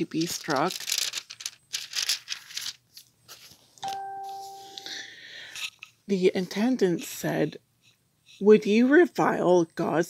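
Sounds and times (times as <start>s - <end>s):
crinkling handling noise: 0.0s - 6.0s
electronic beep: 3.8s - 5.0s.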